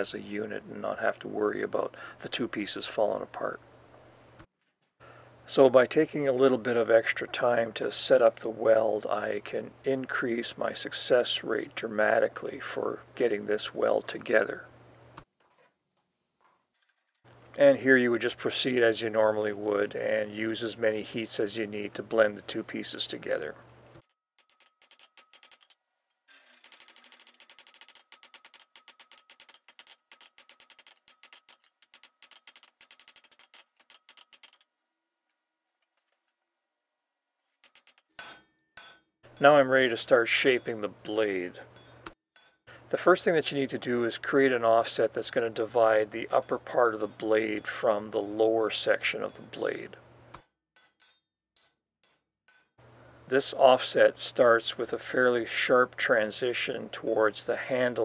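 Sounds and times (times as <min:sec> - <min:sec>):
hammer striking steel on anvil: 0:18.3 - 0:25.8, 0:37.6 - 0:39.7, 0:50.4 - 0:52.8.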